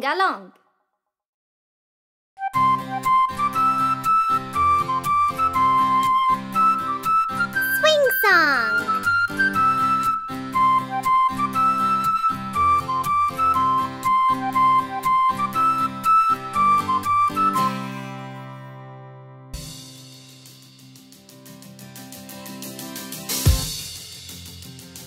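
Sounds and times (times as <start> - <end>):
children's song instrumental: 7.6 - 8.9.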